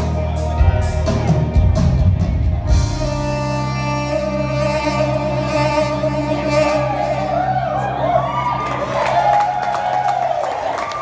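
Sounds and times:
live band music: 0:00.0 - 0:09.2
crowd cheering and clapping: 0:06.8 - 0:11.0.

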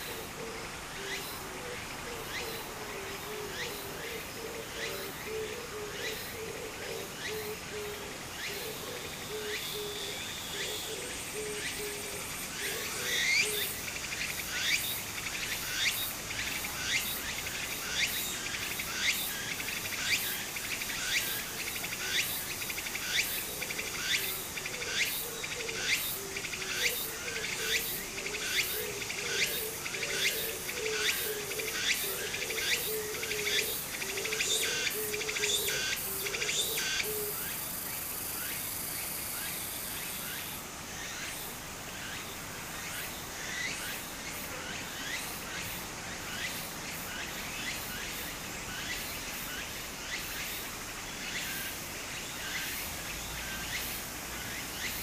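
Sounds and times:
cicada pulsing call: 0:00.0 - 0:55.0.

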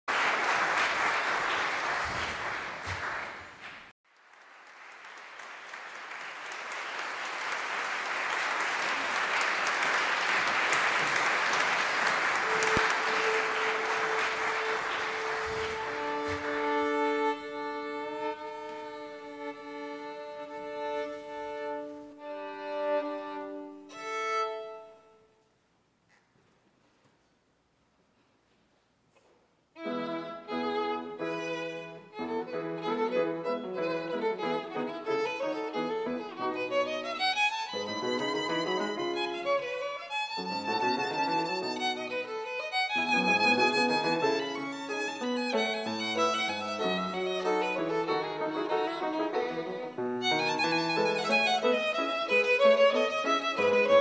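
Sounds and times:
audience applause: 0:00.0 - 0:17.3, 0:40.3 - 0:42.2, 0:42.8 - 0:48.2
violin tuning: 0:12.4 - 0:25.2, 0:29.8 - 0:54.0.

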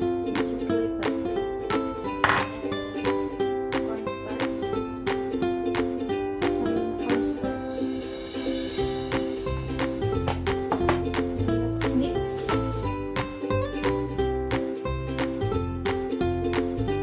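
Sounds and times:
plucked-string melody over a beat: 0:00.0 - 0:17.0.

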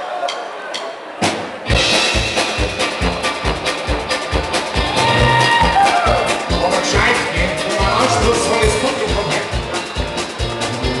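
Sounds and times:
brass band playing: 0:01.2 - 0:11.0.

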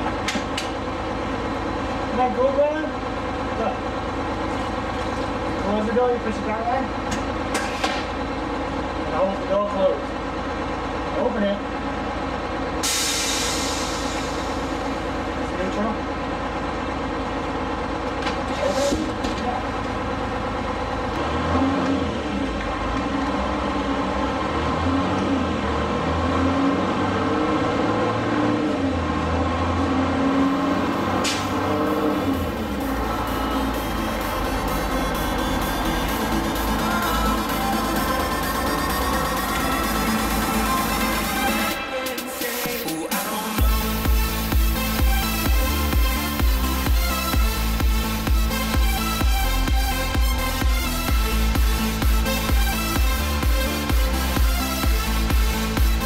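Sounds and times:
diesel engine idling: 0:00.0 - 0:56.0
sharp hiss of air: 0:12.8 - 0:14.6.

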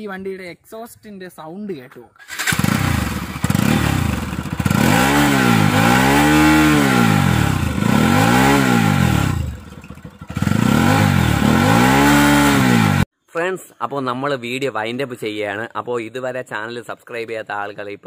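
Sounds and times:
motorcycle engine revving: 0:02.2 - 0:13.1.

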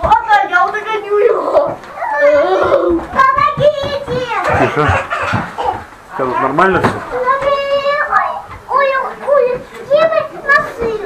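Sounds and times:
young child calling: 0:01.2 - 0:05.8.

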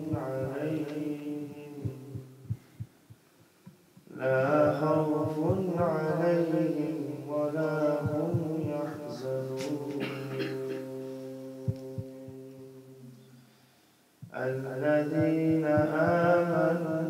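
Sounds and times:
man chanting: 0:00.0 - 0:02.6, 0:04.1 - 0:13.2, 0:14.2 - 0:17.0.

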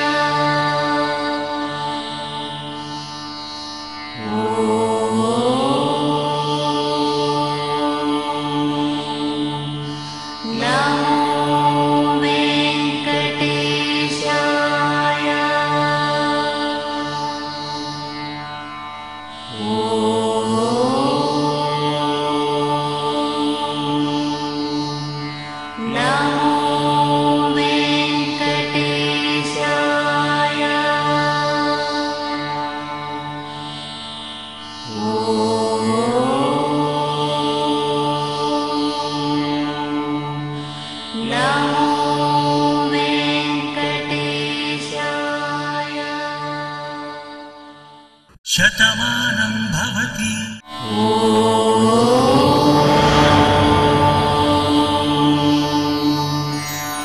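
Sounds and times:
chanted vocal line: 0:00.0 - 0:03.3, 0:04.1 - 0:33.6, 0:34.7 - 0:57.0
steady drone: 0:48.5 - 0:57.0.

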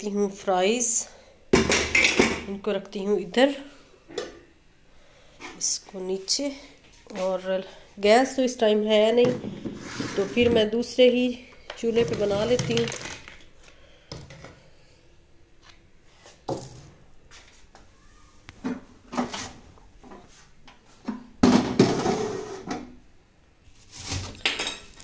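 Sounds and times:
kitchen items knocking: 0:09.2 - 0:10.7, 0:11.9 - 0:13.4, 0:21.4 - 0:22.5
plastic bag rustling: 0:11.9 - 0:13.5.

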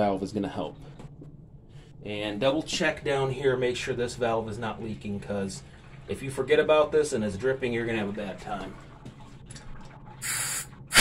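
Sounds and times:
air hissing from relief valve: 0:10.2 - 0:11.0.

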